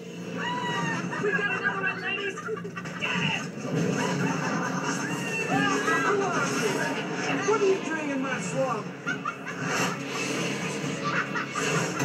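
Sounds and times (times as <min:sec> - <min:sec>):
background music: 0:00.0 - 0:12.0
witches cackling: 0:00.2 - 0:07.4, 0:08.9 - 0:12.0.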